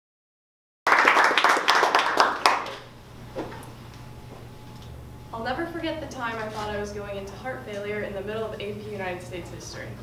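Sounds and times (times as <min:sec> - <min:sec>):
audience applause: 0:00.9 - 0:02.9.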